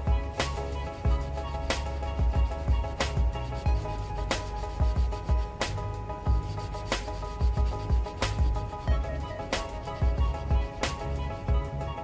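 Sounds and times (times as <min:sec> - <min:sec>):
sandpaper rubbing: 0:00.0 - 0:11.5
background music with a beat: 0:00.0 - 0:12.0.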